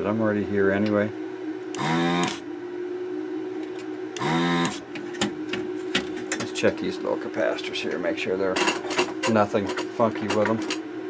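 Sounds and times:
desoldering pump buzzing: 0:00.0 - 0:11.0
steady low hum: 0:00.0 - 0:11.0.

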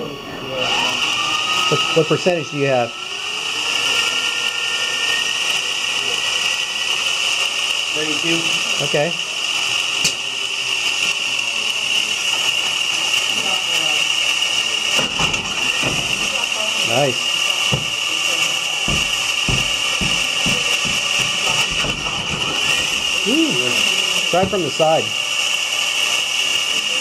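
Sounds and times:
electric motor whine: 0:00.0 - 0:27.0.

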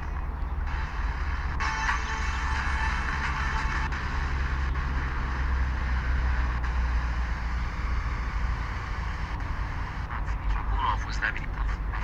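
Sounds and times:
steady low hum: 0:00.0 - 0:12.0
radio static hiss: 0:06.7 - 0:12.0.

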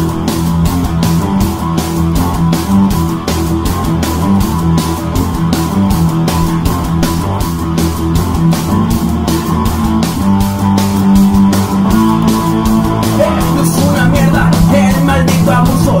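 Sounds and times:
drums fast steady beat: 0:00.0 - 0:16.0
electric guitar riff: 0:00.0 - 0:16.0.

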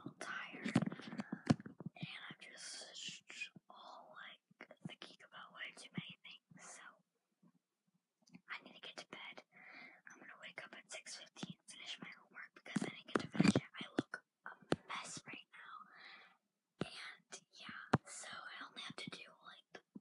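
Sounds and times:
girl whispering rapidly: 0:00.0 - 0:06.9, 0:08.4 - 0:19.9.

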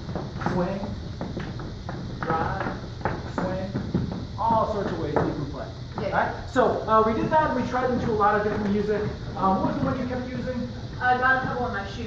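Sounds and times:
dance shoes tapping and sliding: 0:00.0 - 0:12.0
person speaking: 0:02.2 - 0:12.0.

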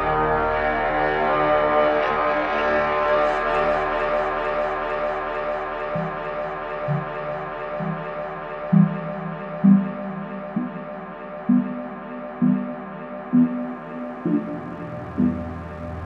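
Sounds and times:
layered synth drone: 0:00.0 - 0:16.0
low bass notes: 0:13.4 - 0:16.0.

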